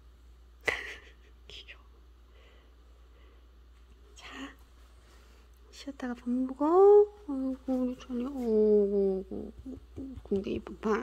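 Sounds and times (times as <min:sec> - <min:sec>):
low steady hum: 0:00.0 - 0:11.0
soft whisper: 0:00.7 - 0:02.2, 0:03.8 - 0:10.3.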